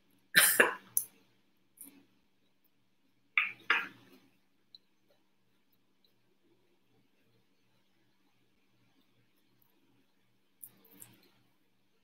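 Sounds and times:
woman coughing: 0:00.4 - 0:00.9.

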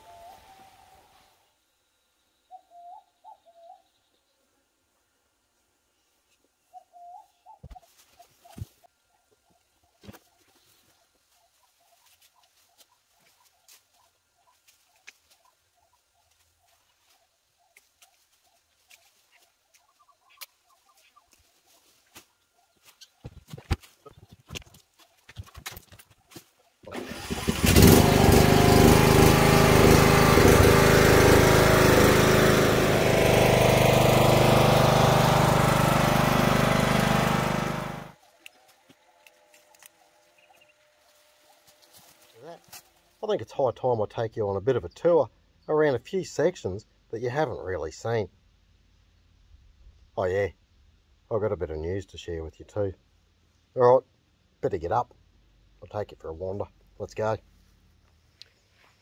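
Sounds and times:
ride-on lawn mower engine: 0:26.9 - 0:38.2.

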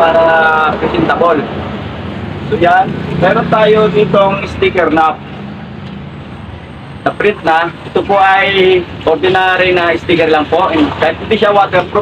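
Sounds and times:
man speaking: 0:00.0 - 0:01.6, 0:02.4 - 0:05.2, 0:07.0 - 0:12.0.

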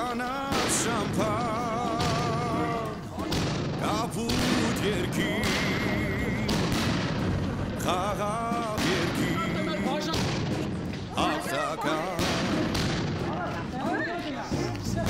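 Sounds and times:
fireworks bursting: 0:00.0 - 0:13.9
continuous rumble: 0:00.8 - 0:11.4, 0:12.0 - 0:15.0.

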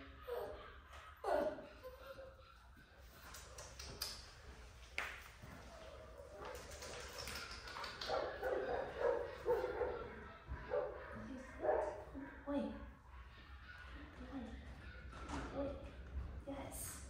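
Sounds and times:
puppy barking: 0:08.1 - 0:12.4.

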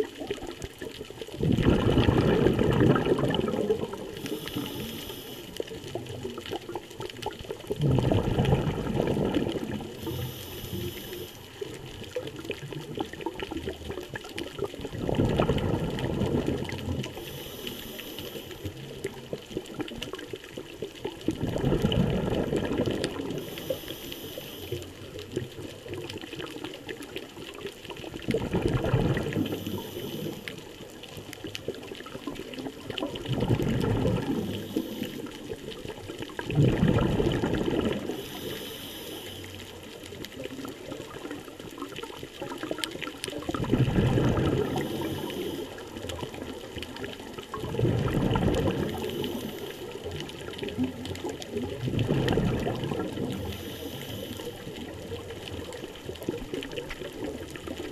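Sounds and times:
gurgling exhaled bubbles: 0:00.0 - 0:57.9
faint high inhaling hiss: 0:04.2 - 0:05.8, 0:09.9 - 0:11.7, 0:17.1 - 0:18.8, 0:23.3 - 0:25.2, 0:29.4 - 0:30.7, 0:34.3 - 0:35.5, 0:38.0 - 0:39.8, 0:44.6 - 0:46.0, 0:48.8 - 0:50.1, 0:53.4 - 0:54.9.

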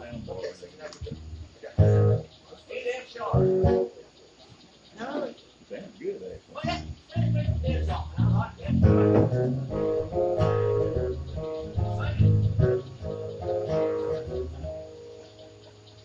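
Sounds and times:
bass guitar notes: 0:00.0 - 0:02.4, 0:03.2 - 0:04.0, 0:06.3 - 0:16.0
acoustic guitar: 0:06.6 - 0:15.8.

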